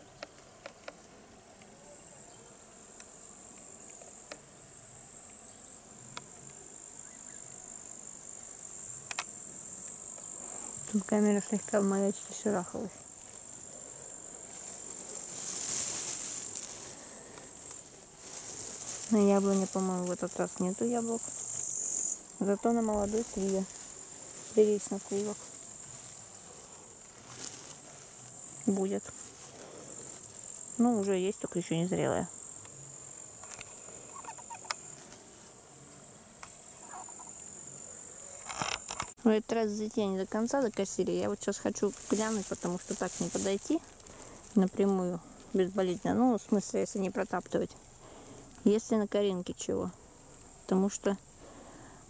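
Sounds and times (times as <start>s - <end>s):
insects chirring: 0.0s - 52.0s
soft hiss: 0.0s - 52.0s.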